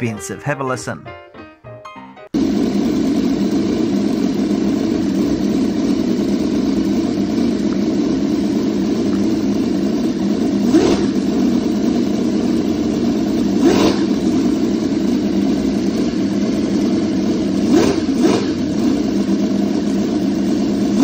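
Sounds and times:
engine revving: 0:02.4 - 0:21.0
model engine running: 0:02.4 - 0:21.0.

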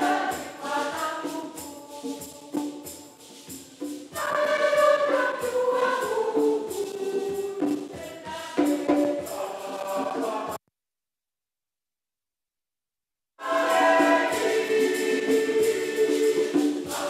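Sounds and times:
congregation and choir singing hymn: 0:00.0 - 0:10.6, 0:13.4 - 0:17.0
percussion beat: 0:00.0 - 0:10.6, 0:13.4 - 0:17.0.

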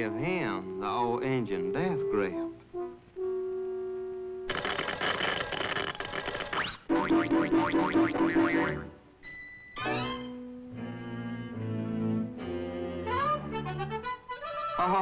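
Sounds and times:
orchestral cartoon music: 0:09.8 - 0:15.0.

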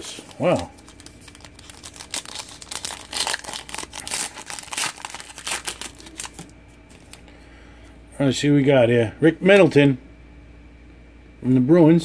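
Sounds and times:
foil wrapper crinkling and tearing: 0:00.0 - 0:07.2.

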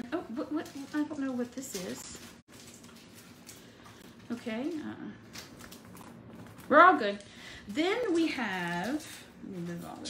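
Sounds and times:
plastic packages rustling: 0:00.1 - 0:10.0.

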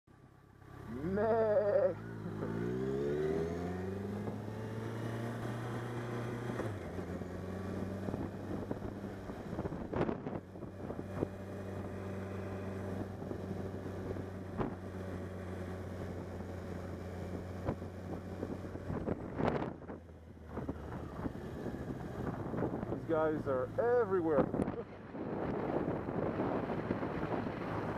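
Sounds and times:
motorcycle engine: 0:00.2 - 0:27.9
wind noise on microphone: 0:08.0 - 0:12.0, 0:17.6 - 0:23.3, 0:24.3 - 0:27.9.

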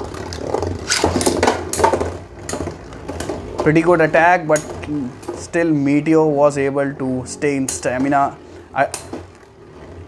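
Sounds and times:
spinning top whirring: 0:00.0 - 0:10.0
sharp plastic clacks: 0:00.3 - 0:02.6
top launching from launcher: 0:00.8 - 0:01.7.

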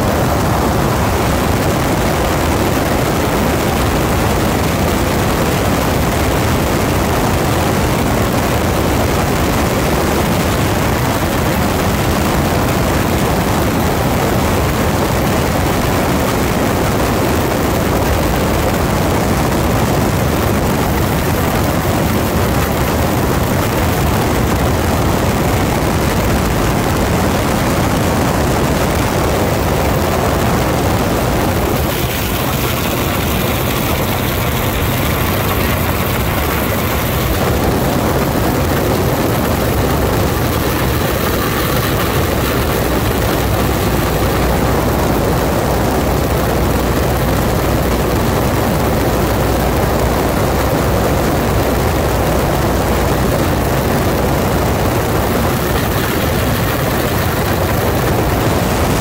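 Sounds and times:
loud rushing wind: 0:00.0 - 0:59.0
radial engine and propeller: 0:00.0 - 0:59.0.

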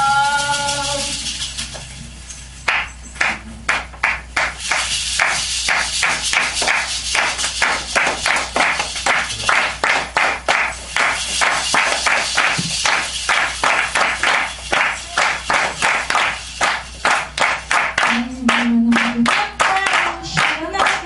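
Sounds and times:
jingling percussion: 0:00.0 - 0:18.3
rhythmic hand clapping: 0:00.0 - 0:21.0.

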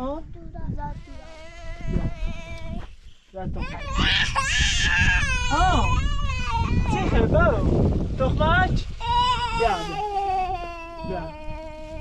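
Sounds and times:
toddler crying: 0:01.0 - 0:02.9, 0:03.6 - 0:07.3, 0:09.0 - 0:12.0.

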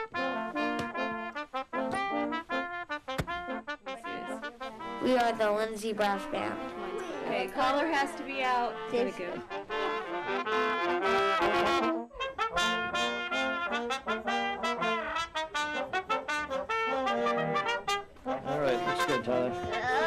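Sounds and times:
brass band playing chords: 0:00.0 - 0:20.0.

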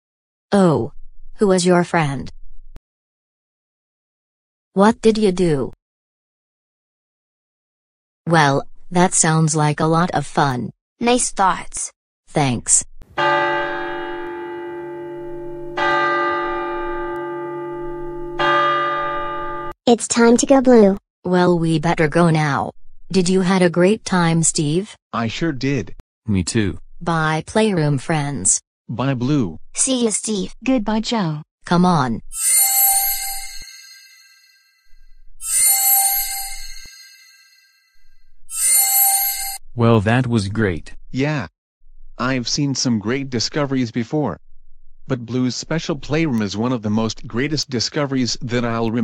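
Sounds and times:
bell-toned clock chime: 0:13.2 - 0:19.8, 0:32.4 - 0:34.7, 0:35.4 - 0:37.8, 0:38.5 - 0:39.6
sparkly magic chime: 0:32.4 - 0:34.6, 0:35.4 - 0:37.7, 0:38.5 - 0:39.6.

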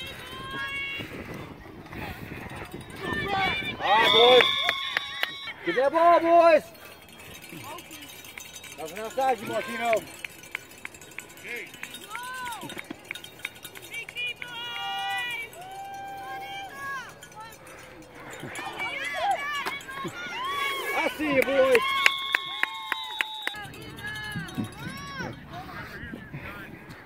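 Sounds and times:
spectators shouting and cheering: 0:00.0 - 0:06.7, 0:08.8 - 0:10.4, 0:11.2 - 0:13.0, 0:13.6 - 0:26.7
outdoor background noise: 0:00.0 - 0:27.0.

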